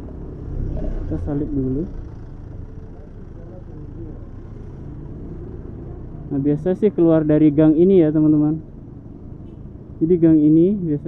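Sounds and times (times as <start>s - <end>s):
motor scooters passing: 0.0s - 7.2s
street traffic rumble: 0.0s - 11.0s.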